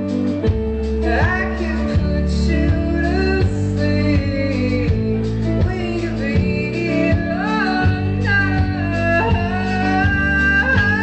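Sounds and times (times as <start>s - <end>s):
guitar chords: 0.0s - 11.0s
higher melody line: 0.0s - 11.0s.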